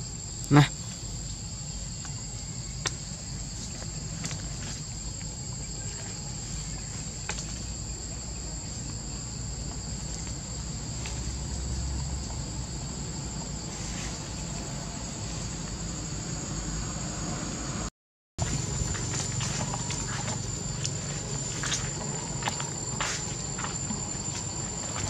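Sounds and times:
insect chorus drone: 0:00.0 - 0:25.0
low background rumble: 0:01.5 - 0:25.0.

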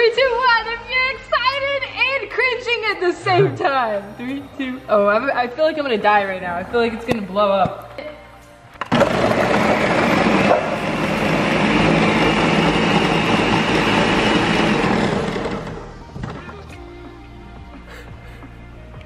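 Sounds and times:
blender running: 0:08.9 - 0:16.0.

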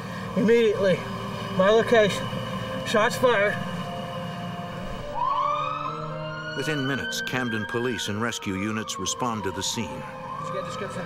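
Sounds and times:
emergency siren wailing: 0:00.0 - 0:11.0.

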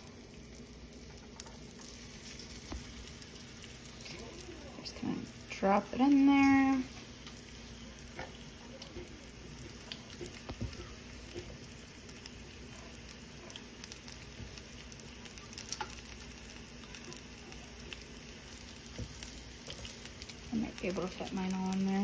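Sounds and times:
meat frying in hot oil: 0:00.0 - 0:22.0
oil popping and crackling: 0:00.0 - 0:22.0.

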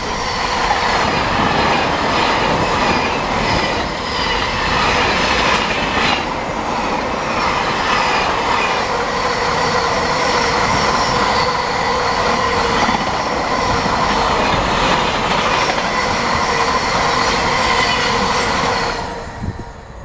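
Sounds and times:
train wheels rumbling on rail: 0:00.0 - 0:20.0.

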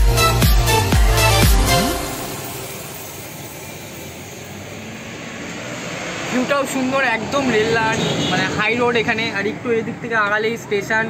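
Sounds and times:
road traffic rushing: 0:00.1 - 0:11.0.

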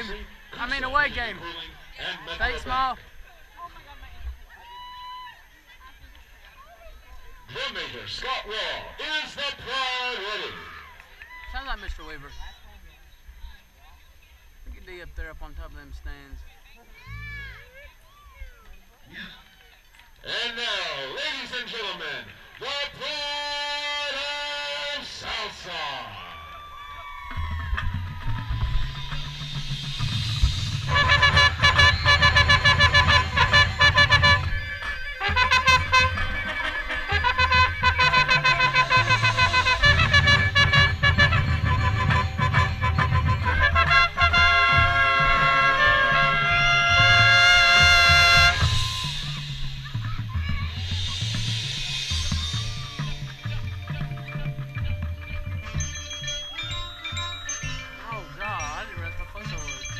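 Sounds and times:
bass drums: 0:26.6 - 0:59.9
marching band playing: 0:27.1 - 0:59.9
trumpet close by: 0:27.8 - 0:54.0
mallet percussion: 0:47.8 - 0:59.9.

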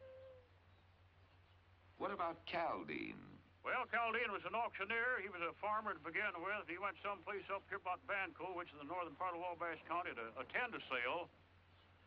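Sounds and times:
faint held tone: 0:00.0 - 0:00.8.

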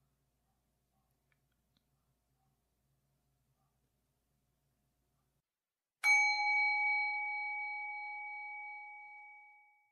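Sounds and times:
bell ringing: 0:06.1 - 0:09.6.

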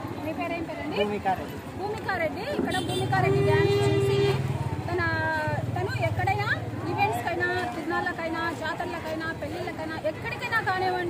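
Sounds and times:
woman talking: 0:04.8 - 0:11.0.

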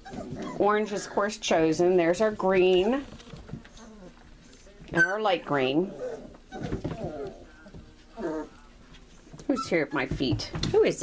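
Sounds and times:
puppies squeaking: 0:00.0 - 0:01.5, 0:03.7 - 0:10.1
puppy whining: 0:00.0 - 0:01.6, 0:03.4 - 0:10.0.

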